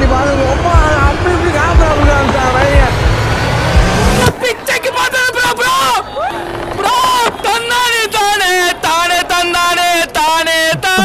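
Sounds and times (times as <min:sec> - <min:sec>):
man speaking: 0:00.0 - 0:03.1, 0:06.8 - 0:11.0
men talking: 0:00.0 - 0:11.0
street noise: 0:00.0 - 0:11.0.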